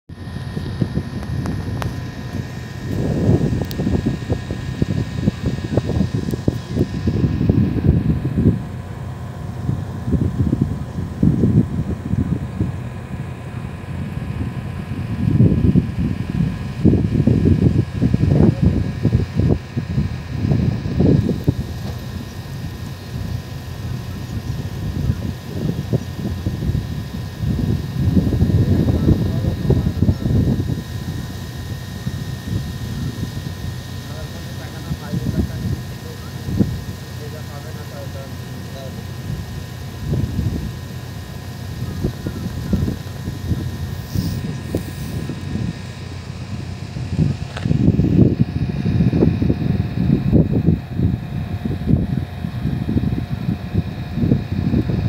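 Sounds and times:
wind buffeting microphone: 0:00.1 - 0:55.0.

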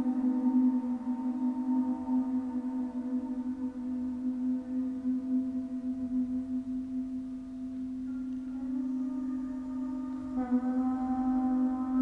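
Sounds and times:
low drone tone: 0:00.0 - 0:12.0.

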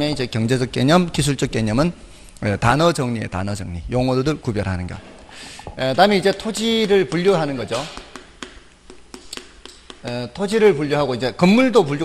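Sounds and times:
chalk tapping on blackboard: 0:06.0 - 0:10.4.

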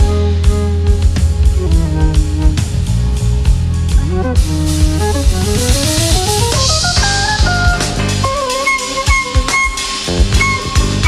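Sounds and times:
busy jazz drums: 0:00.0 - 0:11.0
electric bass: 0:00.0 - 0:11.0
flute playing: 0:00.0 - 0:11.0
piano: 0:00.0 - 0:11.0.

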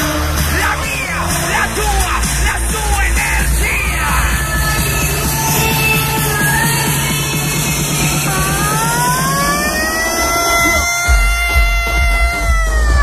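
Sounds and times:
deep bass: 0:00.0 - 0:13.0
electronic dance music: 0:00.0 - 0:13.0
synth line gliding upward: 0:02.4 - 0:11.8.

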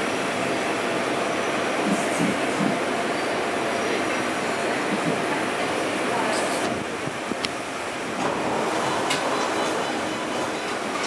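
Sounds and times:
train rumble and hiss: 0:00.0 - 0:11.0.

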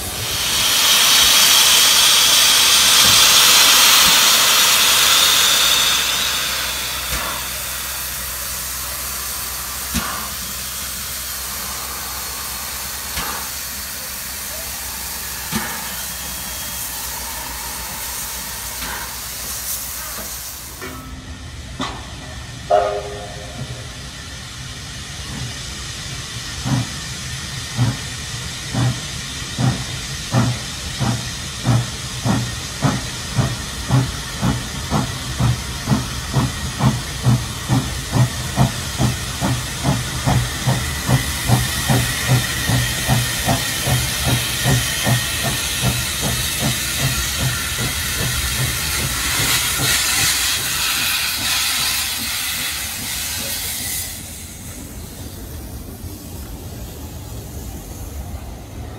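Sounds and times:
steam hissing: 0:00.0 - 0:58.9
steam locomotive exhaust chuffs: 0:00.0 - 0:58.9
train whistle toot: 0:22.7 - 0:23.9.

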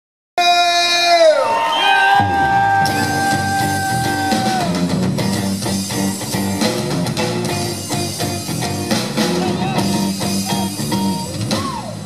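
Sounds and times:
blues band playing: 0:02.2 - 0:12.0
electric guitar: 0:02.2 - 0:12.0.

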